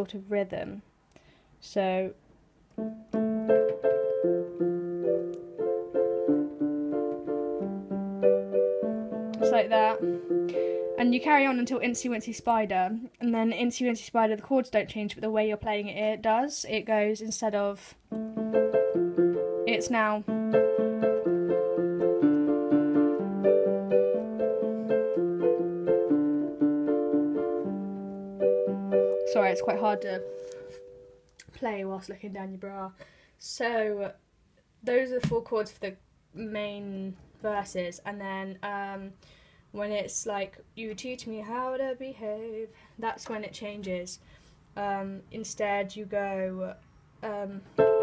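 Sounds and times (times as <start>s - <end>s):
piano chords on keyboard: 2.7s - 12.3s, 18.1s - 31.2s, 47.6s - 48.0s.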